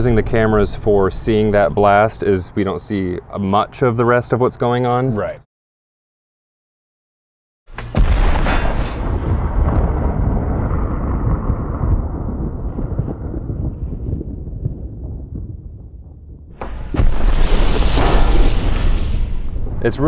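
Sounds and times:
grenade blast with deep rumble: 7.7 - 20.0.

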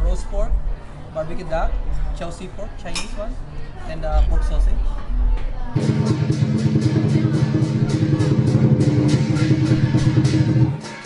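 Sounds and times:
cymbals clashing: 5.8 - 11.0
drum beating fast rhythm: 5.8 - 11.0
gong: 5.8 - 11.0.

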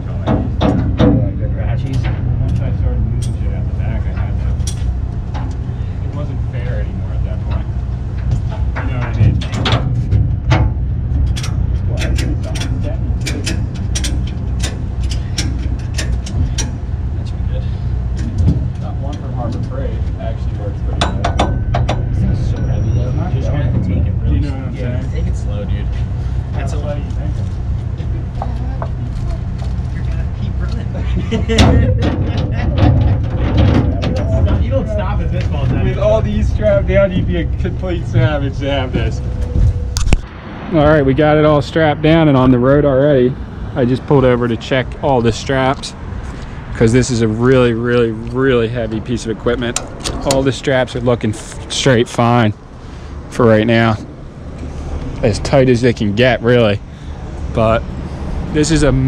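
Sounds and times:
low rumble: 0.0 - 59.0.

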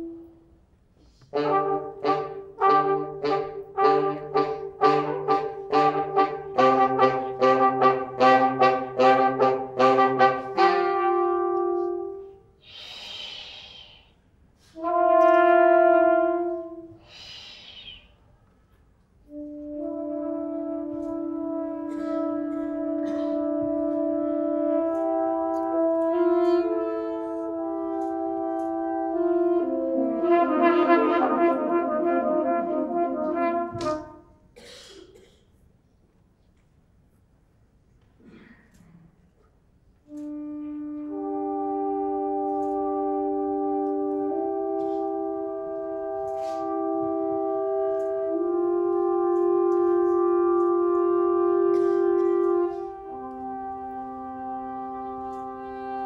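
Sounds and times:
brass instrument holding notes: 0.0 - 0.5, 1.2 - 12.5, 14.7 - 17.0, 19.2 - 34.5, 40.0 - 56.0
saxophone holding notes: 1.2 - 12.4, 19.3 - 34.2, 40.1 - 56.0.

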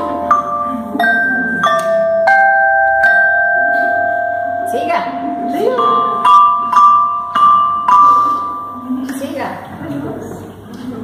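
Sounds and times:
metallophone notes ringing: 0.0 - 9.6.

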